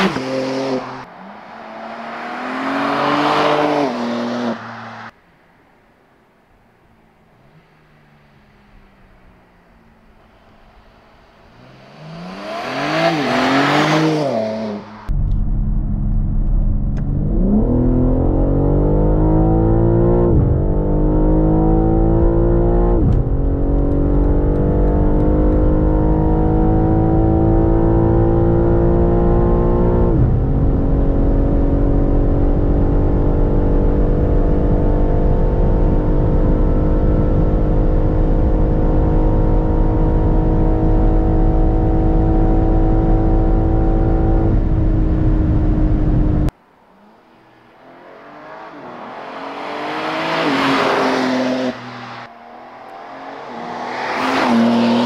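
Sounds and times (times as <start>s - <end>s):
car passing by at speed: 0.0s - 5.1s, 47.7s - 55.0s
car engine accelerating and upshifting: 0.0s - 5.2s, 10.7s - 55.0s.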